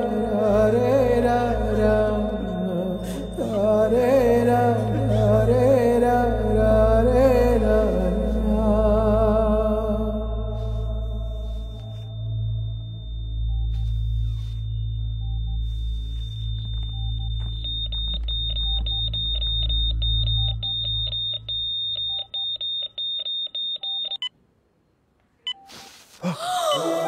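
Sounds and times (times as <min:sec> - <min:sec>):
low droning film score: 0:00.0 - 0:22.0
patient monitor flatline tone: 0:00.0 - 0:24.3, 0:25.5 - 0:27.0
monitor beeping: 0:10.6 - 0:24.3, 0:25.5 - 0:26.0.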